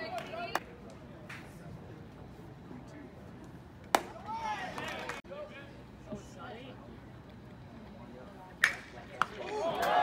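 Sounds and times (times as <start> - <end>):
baseball bat cracking ball: 3.9 - 4.2.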